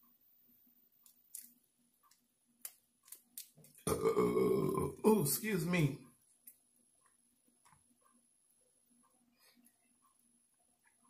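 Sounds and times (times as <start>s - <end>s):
faint clicks of peeling shrimp: 1.0s - 3.8s
man burping loudly: 3.8s - 5.1s.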